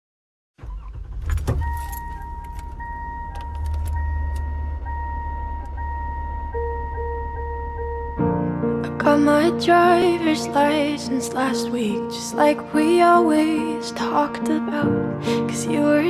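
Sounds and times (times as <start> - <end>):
engine rumble: 0.6 - 10.3
keys jangling: 1.3 - 4.0
car warning chime pinging: 1.3 - 8.5
held musical note: 1.5 - 10.3
held high tone: 1.6 - 8.9.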